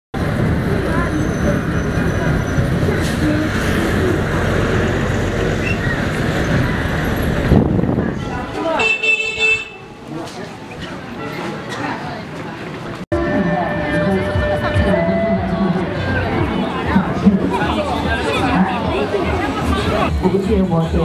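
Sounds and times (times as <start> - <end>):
vehicle road and engine noise: 0.2 - 21.0
vehicle horn tooting: 8.3 - 10.0.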